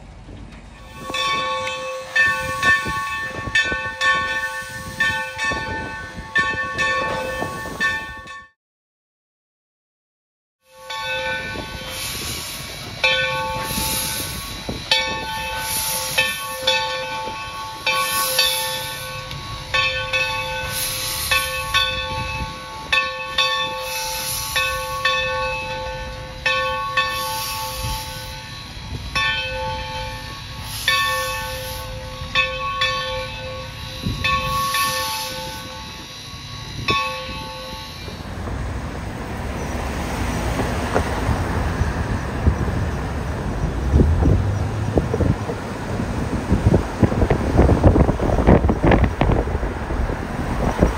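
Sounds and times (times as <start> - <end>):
low rumble of moving train: 0.0 - 8.6, 10.7 - 50.9
locomotive bell ringing: 0.7 - 8.6, 10.7 - 42.2
wind-like noise: 11.3 - 23.0, 33.2 - 50.9.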